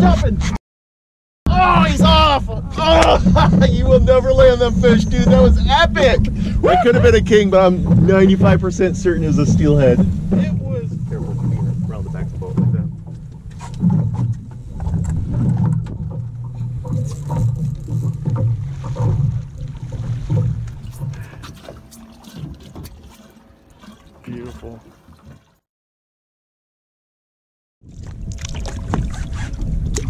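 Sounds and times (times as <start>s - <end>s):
water: 0.0s - 0.6s, 1.5s - 25.7s, 27.8s - 30.0s
boat motor drone: 1.5s - 25.3s
wind: 1.5s - 25.6s, 27.8s - 30.0s.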